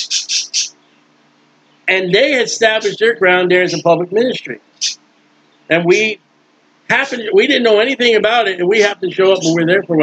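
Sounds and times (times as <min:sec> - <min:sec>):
small bird chirping rapidly: 0:00.0 - 0:01.9, 0:04.6 - 0:06.1
faint steady hum: 0:00.0 - 0:10.0
man speaking: 0:01.9 - 0:04.6, 0:05.7 - 0:06.2, 0:06.9 - 0:10.0.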